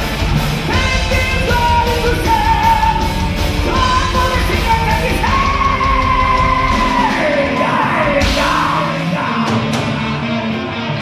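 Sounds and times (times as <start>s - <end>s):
heavy metal band playing live: 0.0s - 11.0s.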